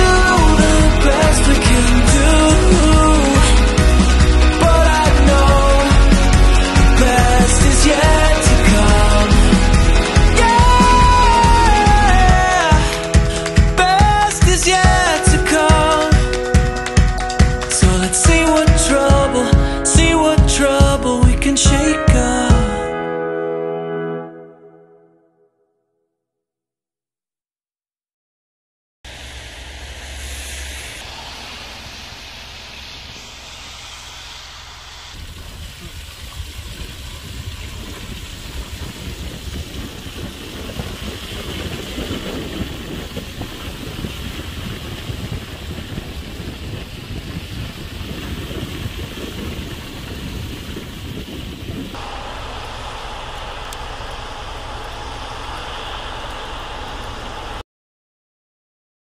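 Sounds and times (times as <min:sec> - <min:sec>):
vehicle road noise: 0:00.0 - 0:14.8, 0:29.1 - 0:57.6
wind gusting on microphone: 0:29.1 - 0:57.6.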